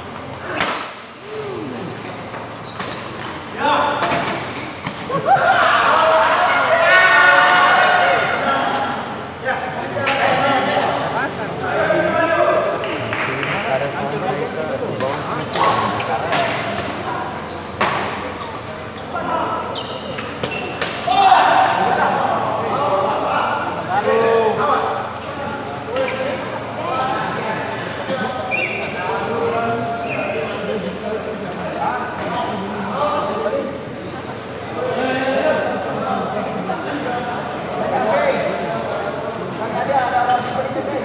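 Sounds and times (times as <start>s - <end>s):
voices chattering: 0.0s - 41.0s.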